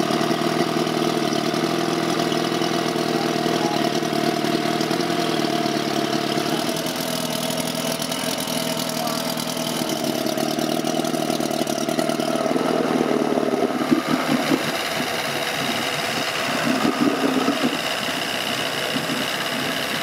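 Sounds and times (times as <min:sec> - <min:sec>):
motorboat engine idling: 0:00.0 - 0:20.0.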